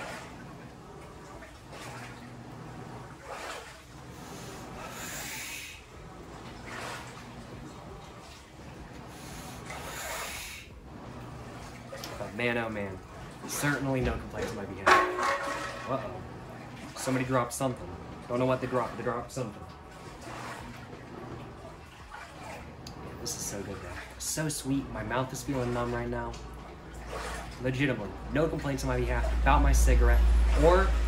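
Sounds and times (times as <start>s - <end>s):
low machine hum: 0.0s - 31.0s.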